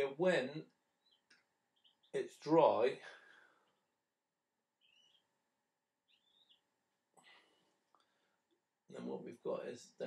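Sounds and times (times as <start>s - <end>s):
faint high-pitched chirps: 4.8s - 5.3s, 6.0s - 8.3s.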